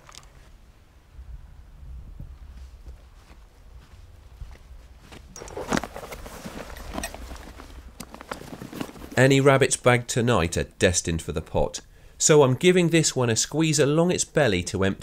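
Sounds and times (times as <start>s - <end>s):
footsteps through grass: 2.4s - 9.3s
clothing rustling: 5.1s - 9.6s.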